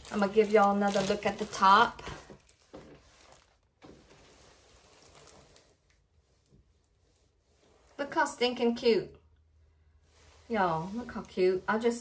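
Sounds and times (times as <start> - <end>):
rustle of canvas and plastic film: 0.0 - 8.8, 10.0 - 12.0.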